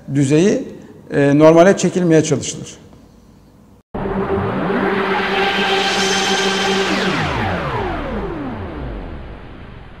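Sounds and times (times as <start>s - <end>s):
held chord: 4.0s - 9.3s
falling pitch sweeps: 4.0s - 10.0s.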